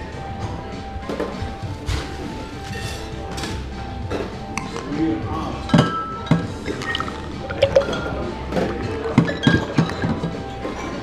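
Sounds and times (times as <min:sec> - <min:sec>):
background music: 0:00.0 - 0:11.0
bar tools and glassware clinking: 0:01.9 - 0:11.0.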